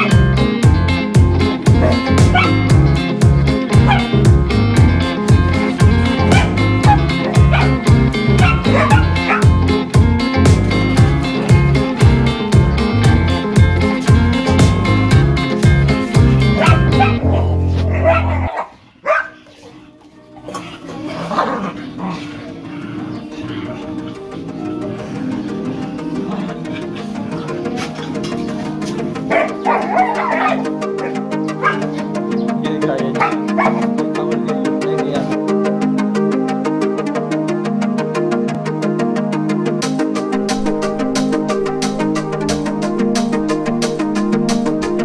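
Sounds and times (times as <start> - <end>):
dogs barking: 0.0 - 0.5, 1.4 - 4.3, 5.0 - 32.4, 33.1 - 34.5
music with steady beat: 0.0 - 18.4, 27.7 - 45.0
dog yipping and whining: 8.4 - 9.4, 16.6 - 17.2, 29.3 - 30.7, 31.6 - 31.9, 33.2 - 33.8.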